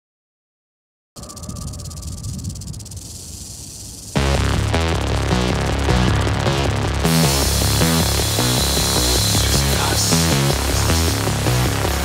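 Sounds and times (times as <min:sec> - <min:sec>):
electronic noise hiss: 0:01.2 - 0:12.0
faint low rumble: 0:01.2 - 0:12.0.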